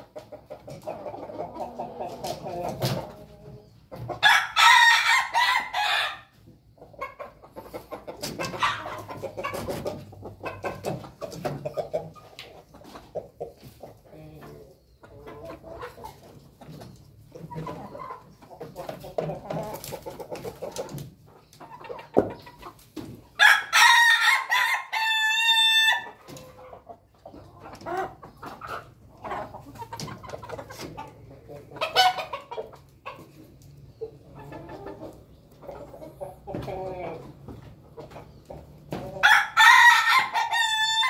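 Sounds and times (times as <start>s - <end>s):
chickens clucking: 0.0s - 41.0s
rooster crowing: 39.2s - 41.0s.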